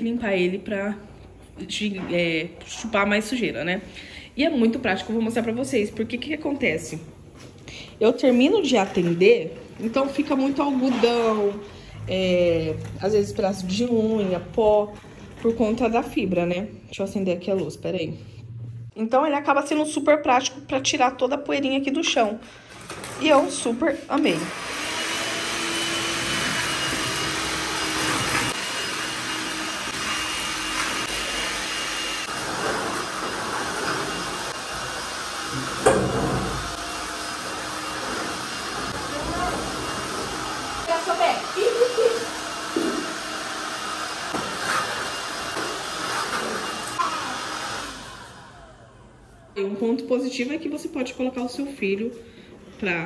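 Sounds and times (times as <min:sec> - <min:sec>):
stick vacuum running: 0:24.3 - 0:49.6.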